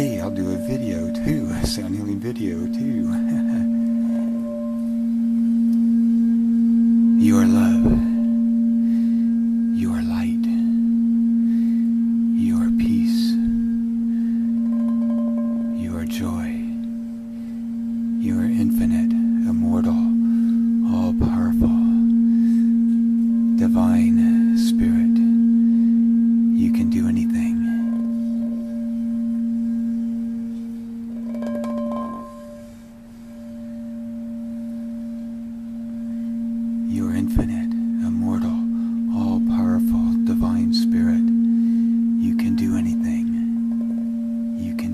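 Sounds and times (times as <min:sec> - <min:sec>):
singing bowl low tone: 0:00.0 - 0:44.9.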